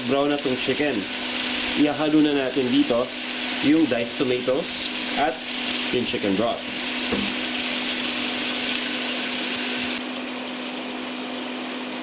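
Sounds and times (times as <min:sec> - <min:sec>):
chicken sizzling in hot oil: 0:00.0 - 0:12.0.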